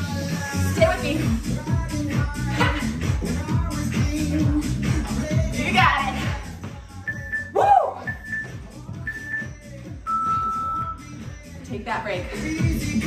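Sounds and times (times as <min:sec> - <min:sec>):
dance music: 0:00.0 - 0:13.0
interval timer beeps: 0:07.1 - 0:09.5, 0:10.1 - 0:11.0.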